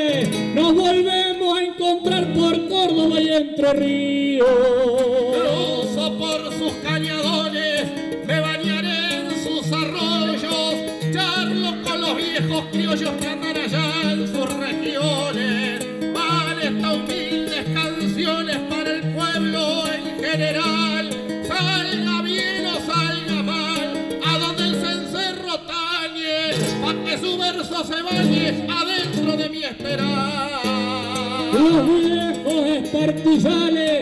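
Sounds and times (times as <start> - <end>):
acoustic guitars playing folk: 0.0 - 34.0
man singing: 0.0 - 34.0.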